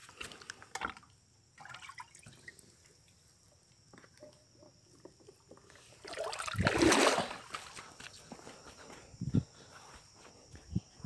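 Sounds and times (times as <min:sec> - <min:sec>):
small knocks and drips: 0:00.2 - 0:06.5
water sloshing in bucket: 0:00.7 - 0:03.0, 0:05.0 - 0:07.8.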